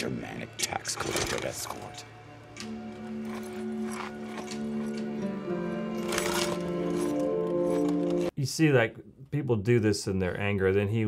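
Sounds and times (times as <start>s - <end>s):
film score sustained notes: 0.0s - 8.3s.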